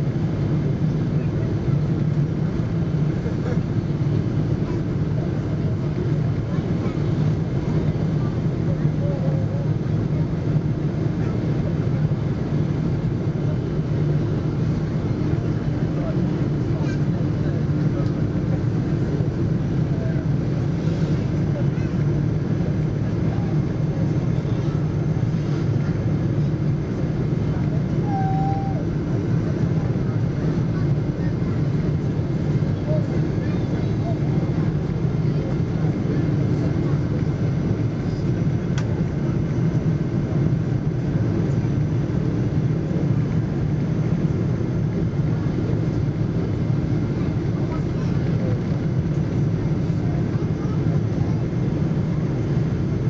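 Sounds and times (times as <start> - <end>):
airplane cabin drone: 0.0 - 53.0.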